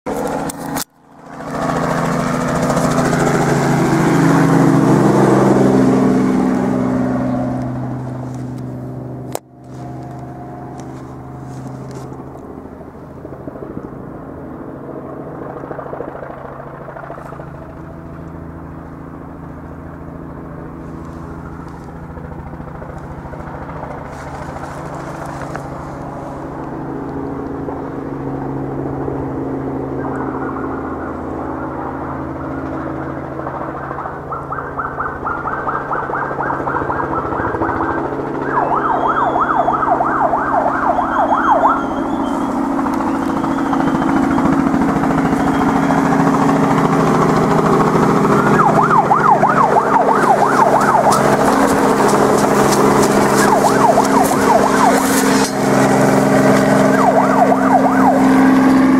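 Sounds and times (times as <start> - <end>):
helicopter engine and rotor: 0.1 - 58.9
fast pulsing beat: 43.0 - 56.2.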